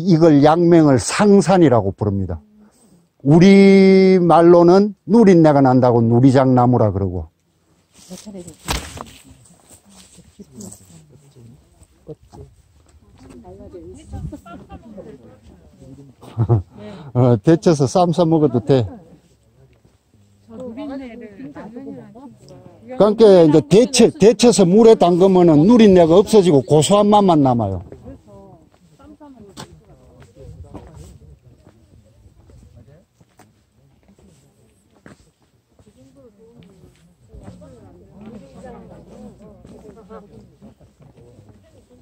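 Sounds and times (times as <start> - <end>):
people talking quietly: 0.0 - 42.0
short sharp scuffs: 8.0 - 9.4.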